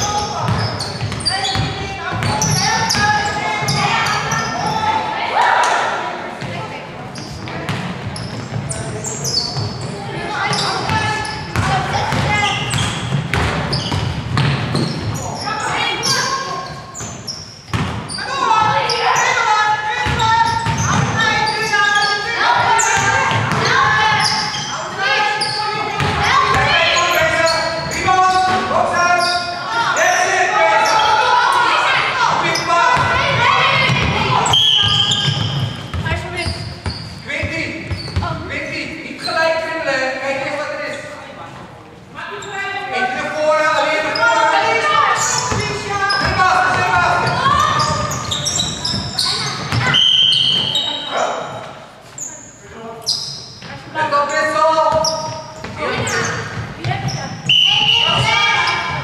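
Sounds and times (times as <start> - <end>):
people shouting: 2.4 - 6.1, 29.7 - 35.4, 57.5 - 59.0
basketball bouncing on wooden floor: 10.5 - 15.1, 17.7 - 18.1, 20.0 - 21.2, 26.0 - 27.3, 33.0 - 38.4
referee's whistle: 34.4 - 35.8, 47.8 - 51.1, 57.4 - 58.8.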